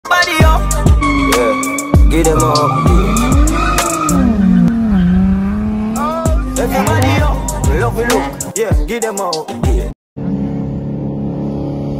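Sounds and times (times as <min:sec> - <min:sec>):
car engine revving high: 0:01.0 - 0:07.4
tires skidding: 0:01.0 - 0:07.4.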